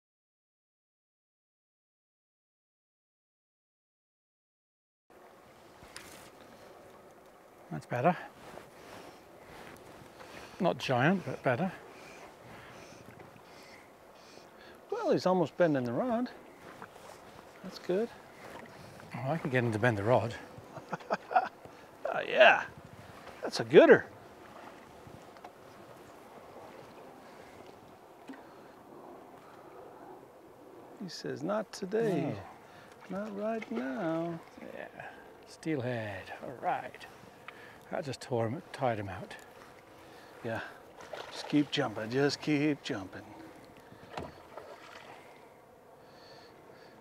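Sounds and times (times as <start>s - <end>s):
water noise around a boat: 5.1s - 47.0s.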